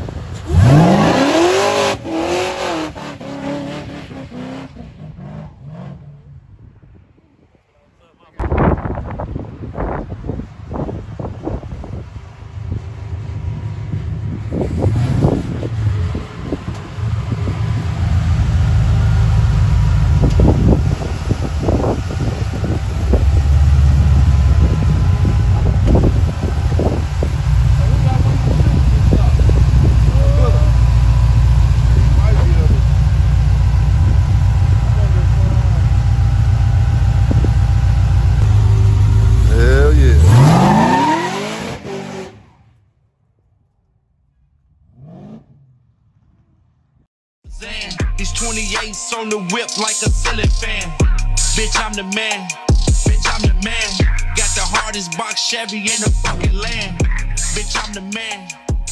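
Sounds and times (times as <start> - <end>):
truck engine lumpy idle and revving: 0.0 - 7.0, 8.4 - 42.7, 43.4 - 58.9.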